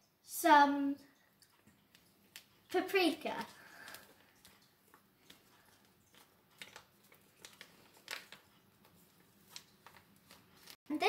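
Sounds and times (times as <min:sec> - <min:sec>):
paper sachet rustling: 0:03.2 - 0:10.8.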